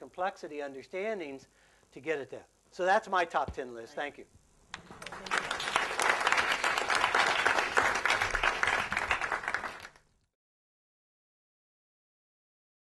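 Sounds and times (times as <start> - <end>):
audience applauding: 4.7 - 10.0.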